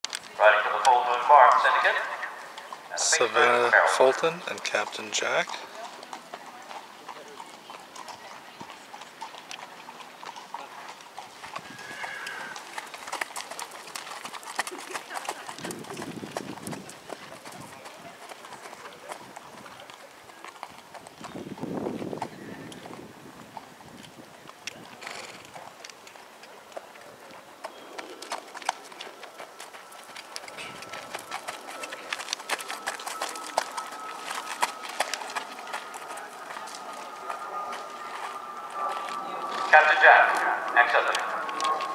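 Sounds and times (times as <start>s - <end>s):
horse hooves on pavement: 0.0s - 41.9s.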